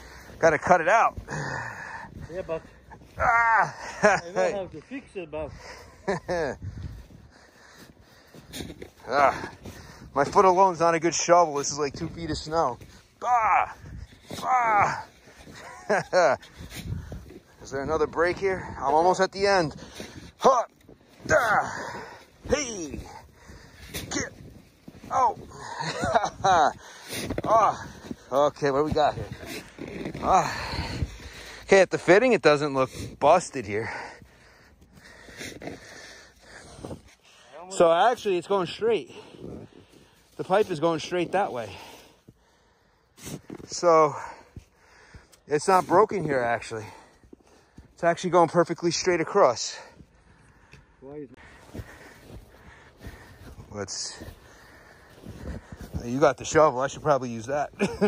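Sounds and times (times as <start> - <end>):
man breathing hard: 0.0 - 0.4, 1.2 - 3.0, 5.5 - 10.2, 16.4 - 17.6, 21.4 - 28.3, 30.2 - 31.7, 33.8 - 37.7, 41.6 - 45.5, 49.8 - 56.0
man laughing: 2.9 - 4.7, 5.6 - 6.7, 14.8 - 16.6, 25.1 - 27.8, 57.6 - 58.0
hand scraping packed snow: 13.9 - 42.3, 51.6 - 58.0.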